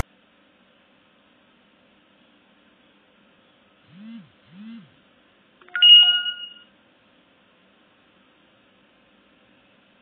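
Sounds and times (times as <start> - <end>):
phone alert chime: 5.7 - 6.6
phone buzzing: 5.7 - 6.6.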